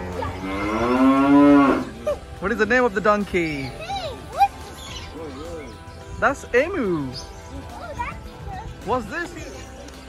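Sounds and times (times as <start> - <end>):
low moo-like animal call: 0.0 - 2.1.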